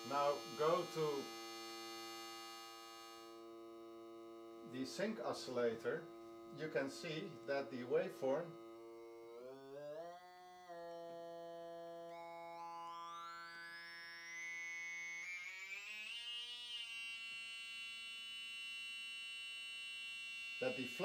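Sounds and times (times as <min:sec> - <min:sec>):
synthesizer sync sweep: 0:04.6 - 0:16.5.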